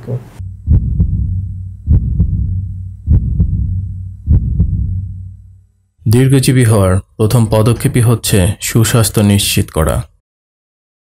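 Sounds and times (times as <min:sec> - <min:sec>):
deep heartbeat thumps: 0:00.4 - 0:05.7.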